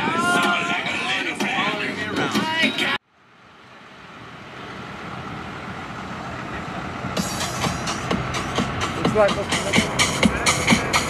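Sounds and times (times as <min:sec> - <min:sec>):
vehicle running: 0:00.0 - 0:11.0
music with steady beat: 0:07.2 - 0:11.0.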